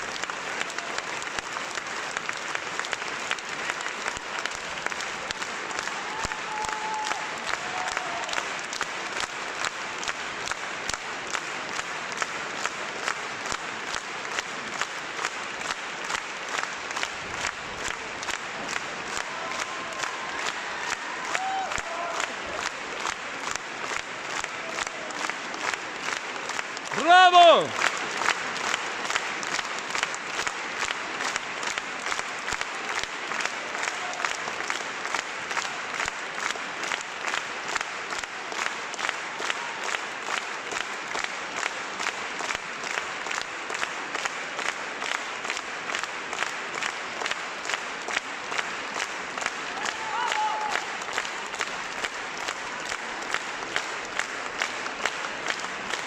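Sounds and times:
audience applauding: 0.0s - 56.0s
person shouting: 26.9s - 27.7s.

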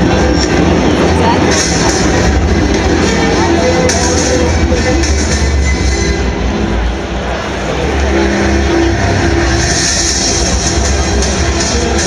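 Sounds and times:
music over public-address system: 0.0s - 12.0s.

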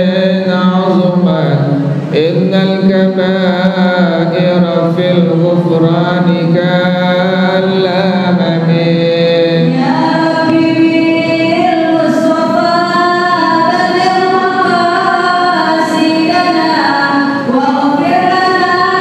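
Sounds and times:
man singing devotional chant: 0.0s - 19.0s.

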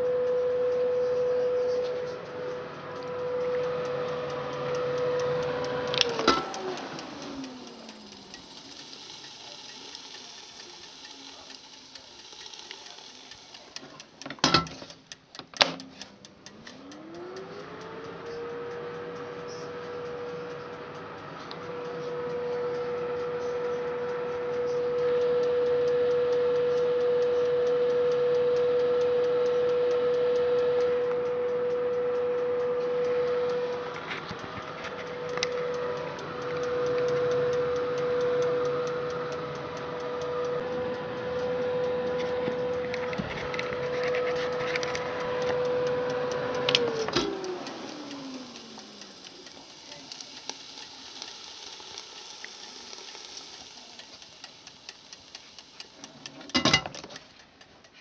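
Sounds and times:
faint regular ticking: 0.0s - 58.0s
oven fan motor humming: 0.0s - 58.0s
oven switch click: 14.2s - 16.8s, 45.4s - 49.0s.

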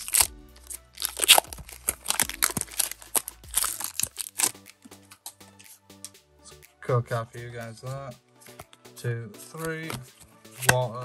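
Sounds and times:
foil wrapper tearing and crinkling: 0.0s - 5.4s.

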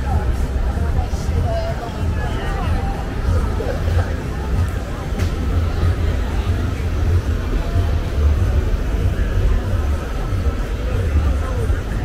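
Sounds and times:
heavy low rumble: 0.0s - 12.0s
voices of passers-by: 0.0s - 12.0s.

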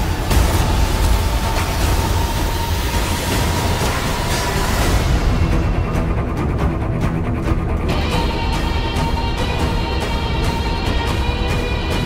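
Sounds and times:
heavy low rumble: 0.0s - 11.5s.

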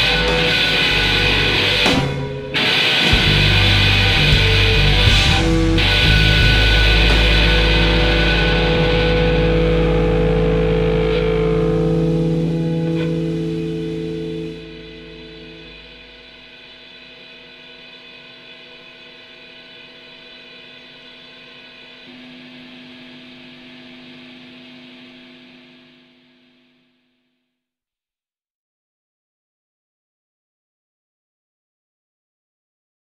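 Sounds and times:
distorted electric guitar drone: 0.0s - 26.8s.

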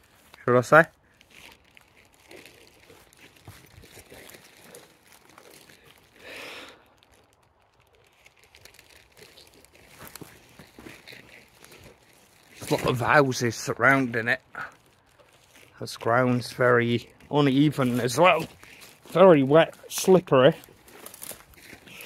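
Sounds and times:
footsteps rustling wet grass: 0.0s - 22.0s.

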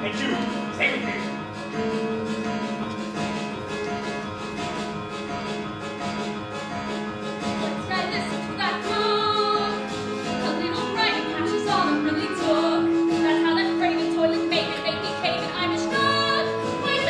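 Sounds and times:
pit band playing musical music: 0.0s - 17.0s.

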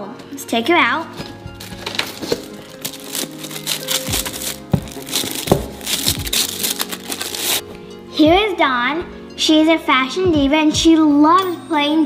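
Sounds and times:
background music with held notes: 0.0s - 12.0s
packaging crinkling and rustling: 1.2s - 7.6s
knocks on cardboard box: 4.7s - 5.8s.

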